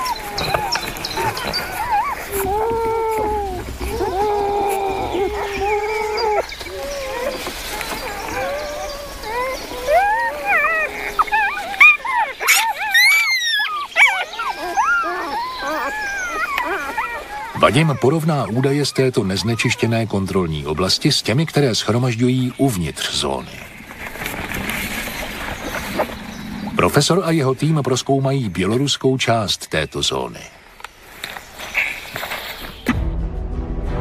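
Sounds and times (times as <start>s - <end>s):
wolf pups whining and squeaking: 0.0s - 21.5s.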